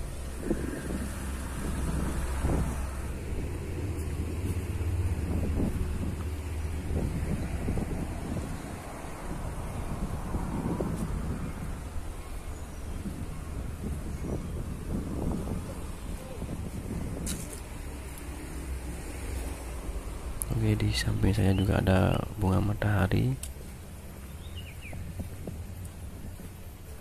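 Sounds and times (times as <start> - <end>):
wind buffeting microphone: 0.0 - 27.0.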